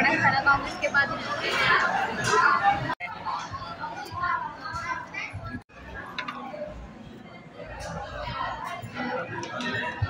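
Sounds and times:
crowd chatter in a hall: 0:00.0 - 0:10.0.

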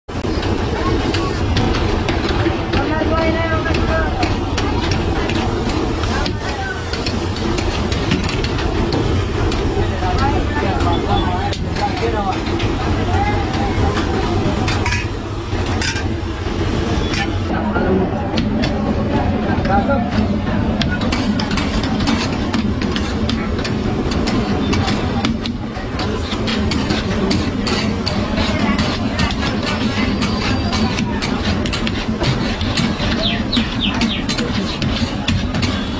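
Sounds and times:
crowded street market voices: 0:00.1 - 0:35.9
metal spatula scraping a pan: 0:20.8 - 0:25.2, 0:25.8 - 0:35.9.

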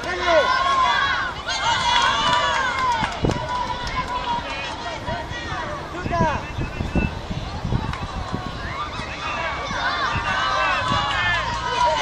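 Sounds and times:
children and adults calling out: 0:00.0 - 0:12.0.

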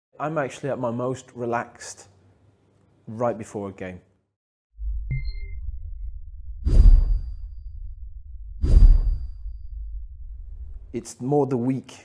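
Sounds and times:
whooshes: 0:06.6 - 0:07.9, 0:08.5 - 0:10.8.

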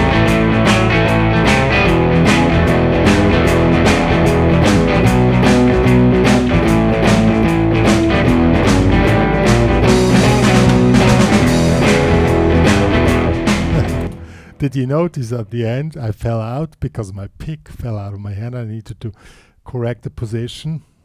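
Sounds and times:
backing track with drums: 0:00.0 - 0:14.5
electric guitar blues riff: 0:00.0 - 0:15.8.

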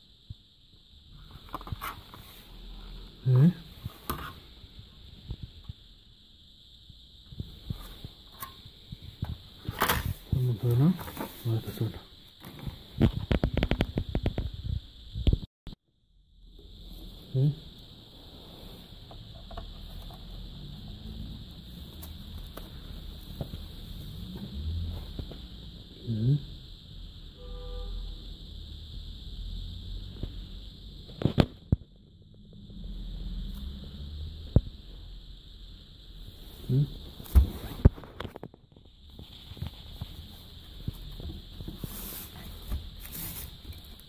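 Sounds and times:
steady high hiss: 0:00.0 - 0:15.5, 0:16.2 - 0:44.0.

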